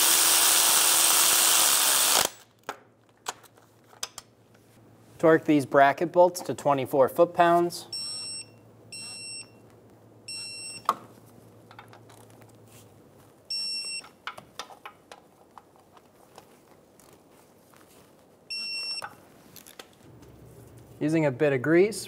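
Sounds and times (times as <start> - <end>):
torque wrench beeping: 8.0 - 9.6, 13.5 - 14.1.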